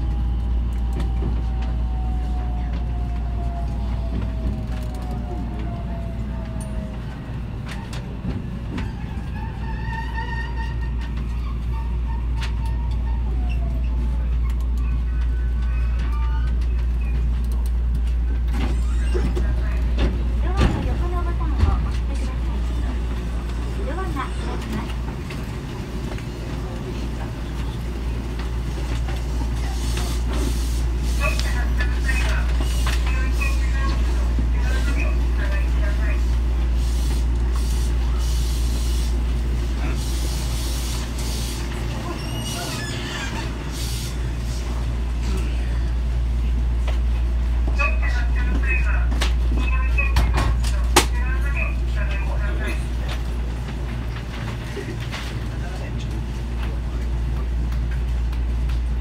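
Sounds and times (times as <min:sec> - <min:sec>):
train low rumble: 0:00.0 - 0:59.0.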